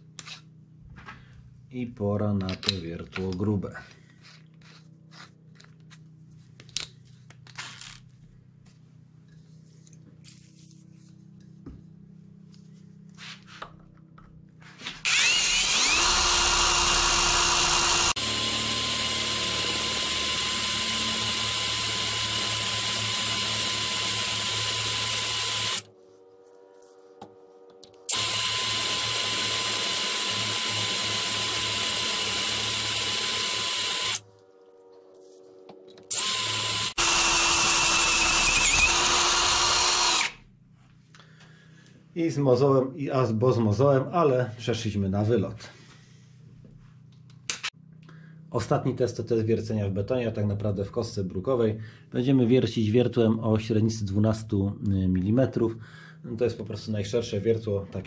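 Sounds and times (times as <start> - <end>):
cordless drill boring through steel: 15.0 - 25.9, 28.1 - 34.2, 36.1 - 40.4.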